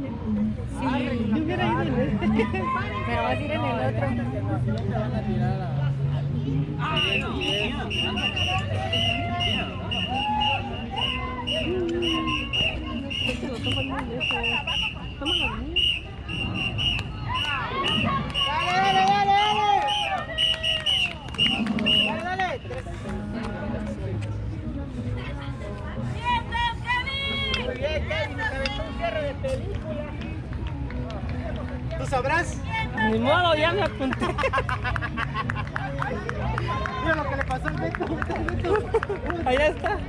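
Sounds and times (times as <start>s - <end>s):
indistinct chatter: 0.0s - 40.0s.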